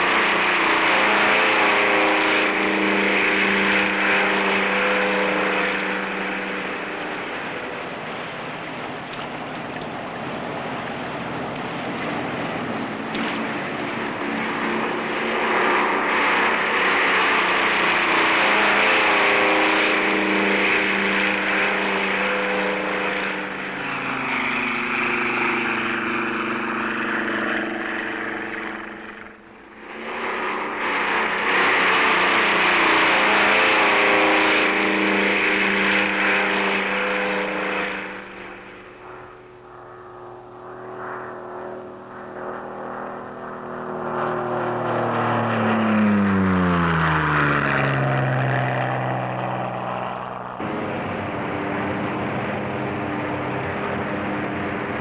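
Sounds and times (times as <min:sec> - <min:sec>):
propeller aircraft droning: 0:00.0 - 0:55.0.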